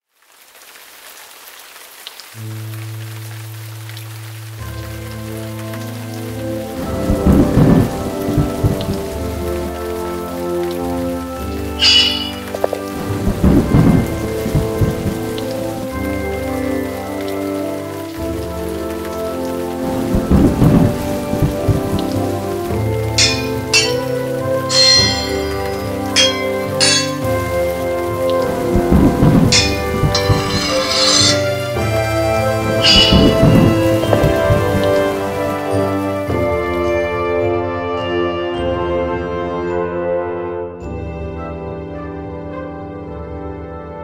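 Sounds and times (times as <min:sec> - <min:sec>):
steady rain: 0:00.0 - 0:39.8
slow sustained music chords: 0:02.4 - 0:37.6.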